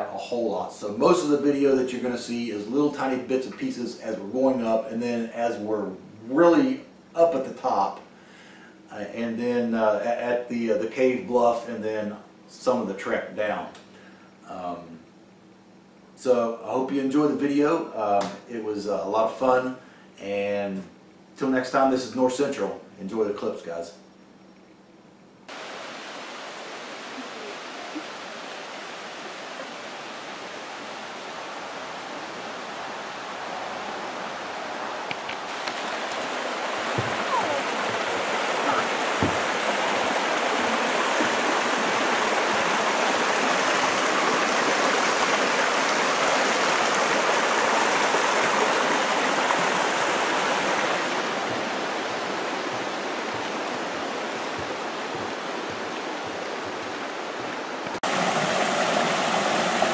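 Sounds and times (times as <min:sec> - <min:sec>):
creek rushing over rocks: 0:25.5 - 0:59.9.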